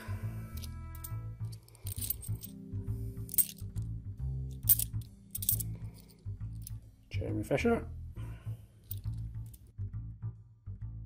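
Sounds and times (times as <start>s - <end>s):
background music with bass line: 0.0s - 11.0s
coins chinking: 0.5s - 2.6s, 3.2s - 3.7s, 4.5s - 6.8s.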